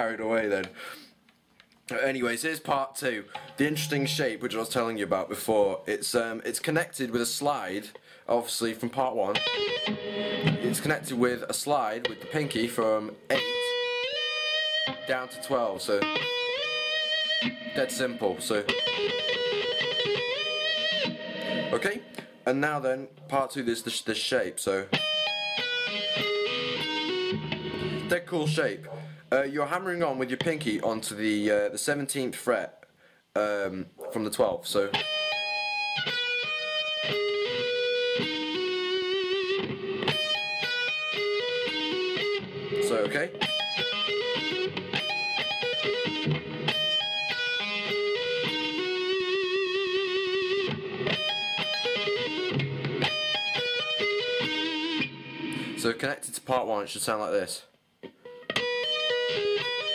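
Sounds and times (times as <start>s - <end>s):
electric guitar legato arpeggio: 3.3s - 4.4s, 9.3s - 11.3s, 12.0s - 22.4s, 24.9s - 29.2s, 35.0s - 55.8s, 58.2s - 59.9s.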